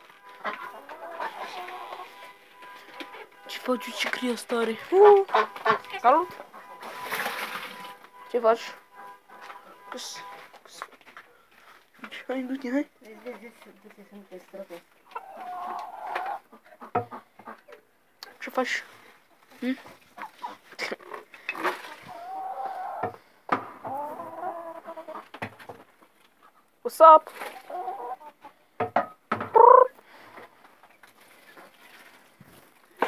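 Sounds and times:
hen clucking: 0.0 - 10.5, 15.0 - 17.8, 19.8 - 25.8, 26.4 - 28.6, 29.4 - 30.5
hen long drawn-out call: 0.4 - 2.3, 15.1 - 16.4, 21.8 - 23.1, 29.5 - 30.0.

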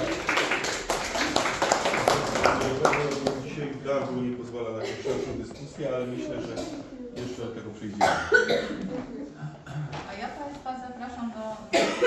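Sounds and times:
audience applauding: 0.0 - 3.7.

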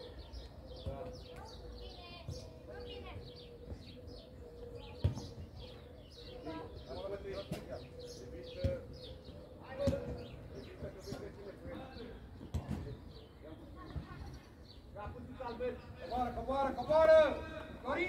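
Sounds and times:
birds chirping: 0.0 - 18.0.

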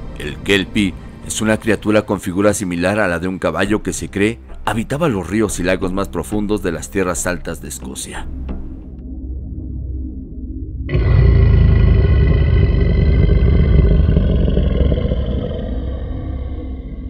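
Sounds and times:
low rumbling drone: 9.0 - 17.0.

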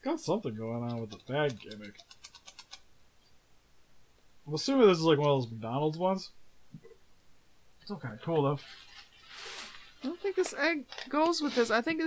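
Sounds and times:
plastic toy figures clicking: 0.7 - 2.9.

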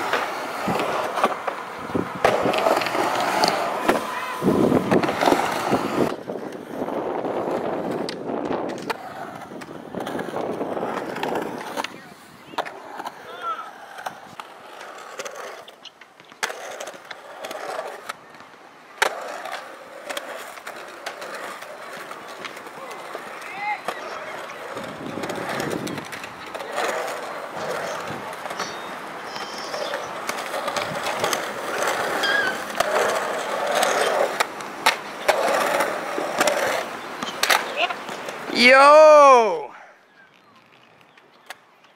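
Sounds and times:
skateboard clacks: 0.0 - 39.0
skateboard wheels rolling on concrete: 0.0 - 41.9.

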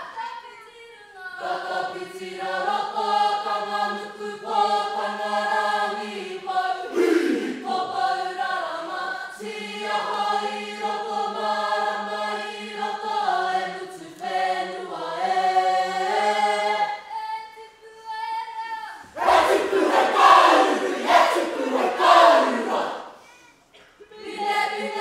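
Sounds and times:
group singing in harmony: 1.3 - 17.6, 19.0 - 23.2, 24.0 - 25.0
group shouted chanting: 6.8 - 8.3, 19.2 - 23.2.

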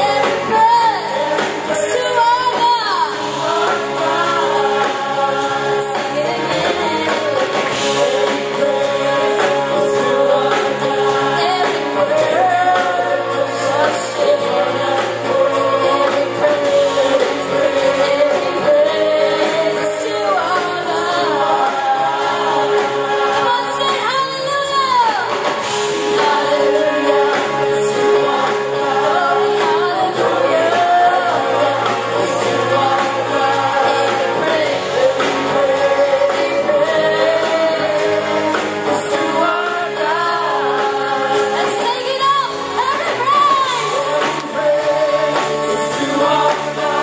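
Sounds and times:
band accompaniment with steady beat: 0.0 - 47.0
group singing gospel song: 0.0 - 47.0.

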